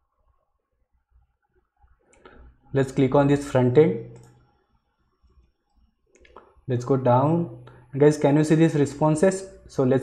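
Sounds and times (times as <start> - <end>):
faint computer mouse clicks: 4.1 - 4.4, 5.2 - 6.6.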